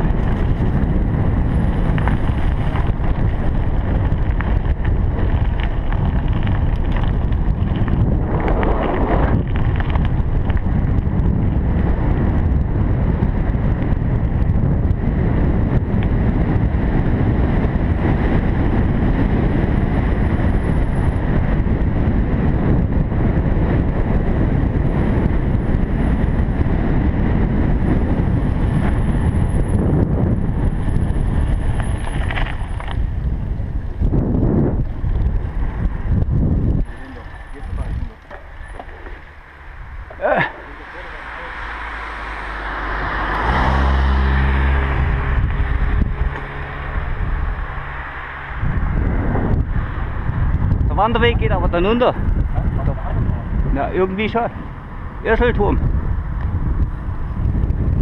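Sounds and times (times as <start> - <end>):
tyres rolling on asphalt: 0.0 - 58.0
wind buffeting microphone: 0.0 - 58.0.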